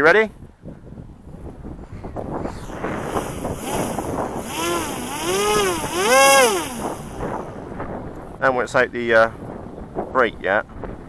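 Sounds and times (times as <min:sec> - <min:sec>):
model plane motor whining: 0:02.3 - 0:07.6.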